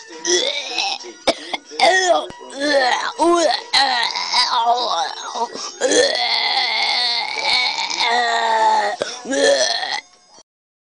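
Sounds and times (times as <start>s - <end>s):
man retching and vomiting: 0.2s - 10.1s.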